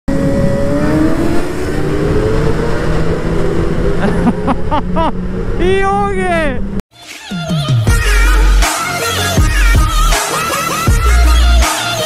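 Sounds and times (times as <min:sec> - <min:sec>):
motorcycle engines running: 0:00.1 - 0:06.8.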